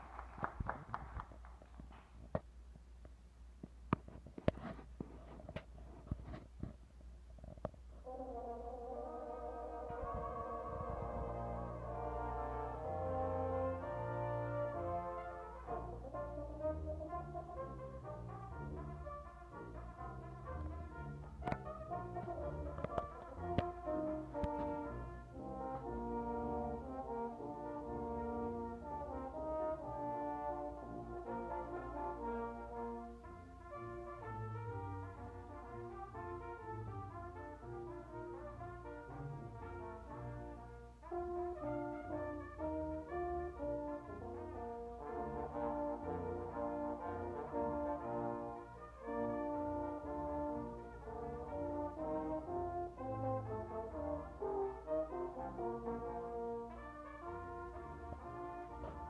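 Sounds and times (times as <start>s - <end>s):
deep tuba line: 8.0s - 59.0s
brass ensemble playing chords: 8.1s - 59.0s.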